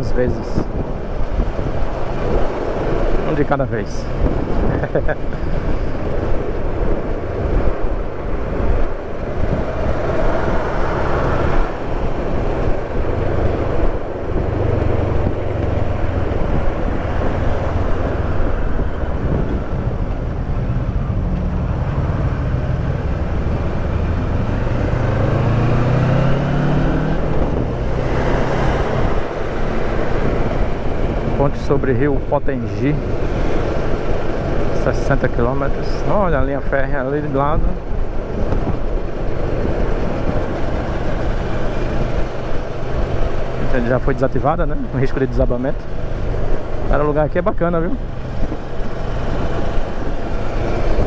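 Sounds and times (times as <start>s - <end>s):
wind noise on microphone: 0.0s - 51.0s.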